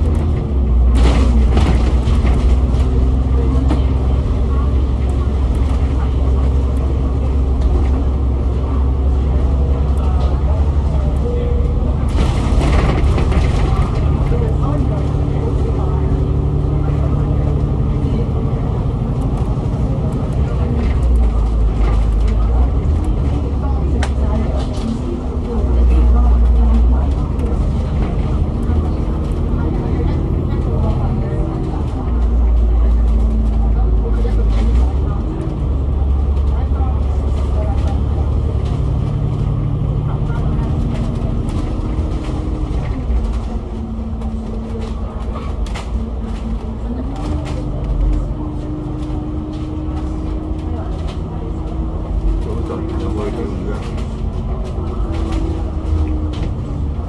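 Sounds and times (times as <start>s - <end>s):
bus diesel engine running: 0.0s - 57.0s.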